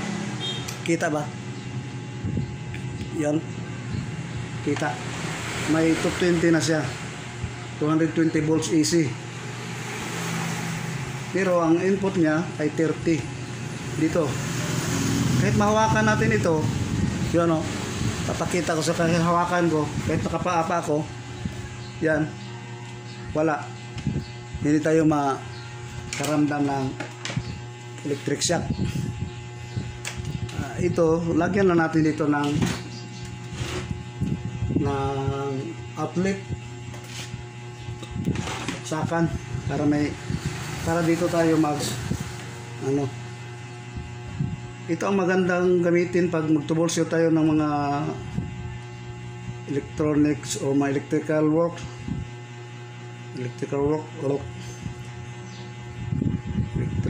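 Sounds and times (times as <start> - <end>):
low steady hum: 0.0 - 57.0
man talking: 3.0 - 3.6, 4.6 - 5.0, 7.8 - 9.2, 11.3 - 14.5, 15.4 - 21.2, 26.1 - 27.1, 28.0 - 28.8, 30.5 - 32.8, 34.8 - 36.6, 38.8 - 42.1, 42.8 - 43.2.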